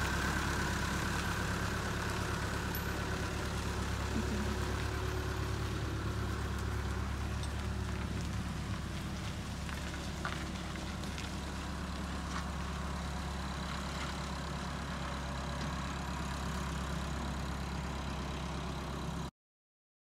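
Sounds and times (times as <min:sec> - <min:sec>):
tractor engine running: 0:00.0 - 0:19.3.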